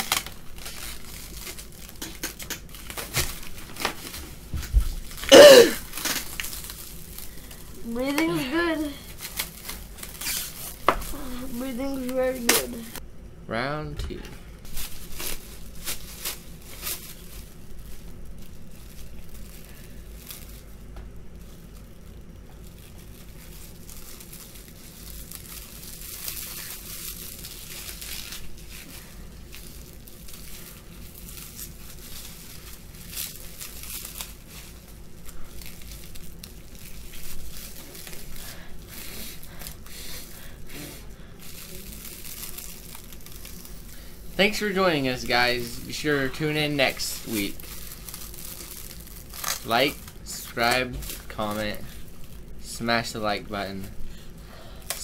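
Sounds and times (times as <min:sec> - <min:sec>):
plastic wrap crinkling: 0:00.0 - 0:13.0, 0:14.6 - 0:55.0.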